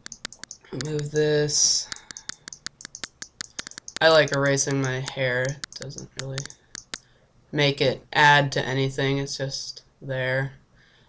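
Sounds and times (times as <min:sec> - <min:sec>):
computer mouse clicking: 0:00.0 - 0:01.1, 0:01.9 - 0:07.1.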